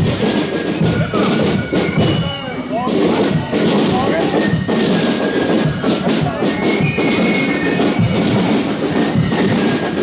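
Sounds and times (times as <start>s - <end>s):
marching band music with drums: 0.0s - 10.0s.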